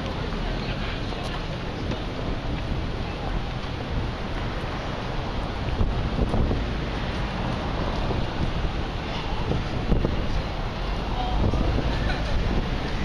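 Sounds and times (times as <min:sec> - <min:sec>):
busy pedestrian street noise: 0:00.0 - 0:13.0
wind rumbling on microphone: 0:00.0 - 0:13.0.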